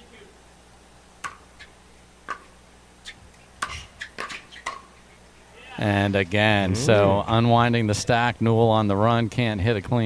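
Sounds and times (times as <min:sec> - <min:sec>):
paddles hitting plastic ball: 0:01.2 - 0:01.7, 0:02.3 - 0:02.5.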